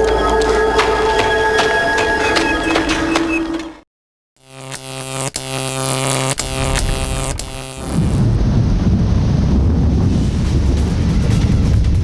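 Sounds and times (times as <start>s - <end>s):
sharp clicks: 4.7s - 7.8s
loud dense rumbling noise: 7.8s - 12.0s.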